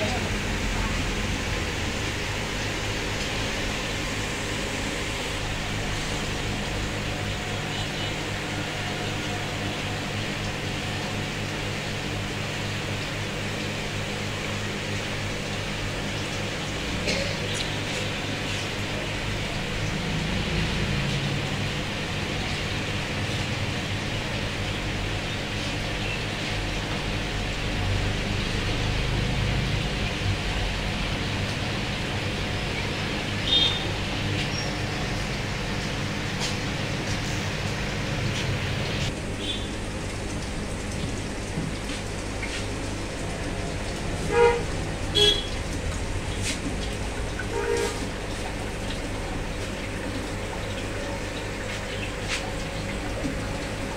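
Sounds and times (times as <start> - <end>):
steady hum and hiss: 0.0 - 53.9
vehicle horns tooting: 44.2 - 45.6, 47.4 - 48.2.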